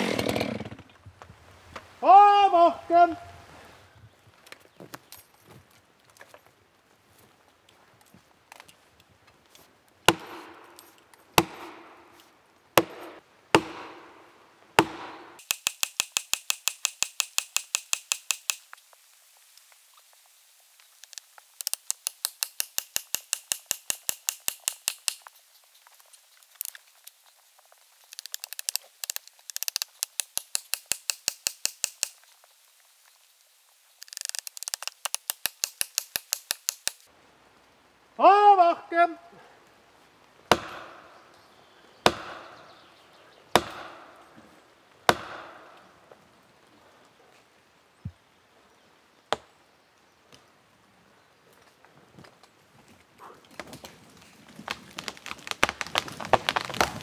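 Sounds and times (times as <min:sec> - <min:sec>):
axe striking plastic wedges: 0:10.1 - 0:12.2, 0:12.8 - 0:14.1, 0:14.8 - 0:18.5, 0:40.5 - 0:41.1, 0:42.0 - 0:42.6, 0:43.5 - 0:44.3, 0:45.1 - 0:45.8.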